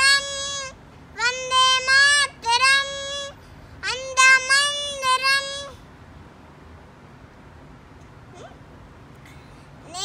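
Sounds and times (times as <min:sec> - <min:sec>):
girl singing unaccompanied: 0:00.0 - 0:05.8.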